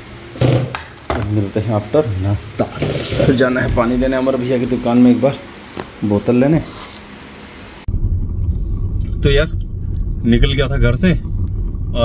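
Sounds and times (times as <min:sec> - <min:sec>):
low rumble inside car cabin: 0:07.9 - 0:12.0.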